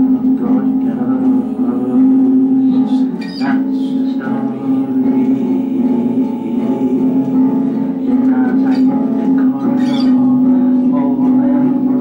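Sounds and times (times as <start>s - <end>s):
man singing: 0.0s - 12.0s
strummed acoustic guitar: 0.0s - 12.0s.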